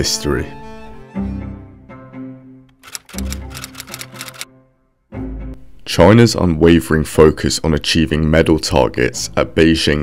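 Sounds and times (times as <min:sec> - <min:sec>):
background music with low notes: 0:00.0 - 0:10.0
typewriter keys striking rapidly: 0:02.8 - 0:04.4.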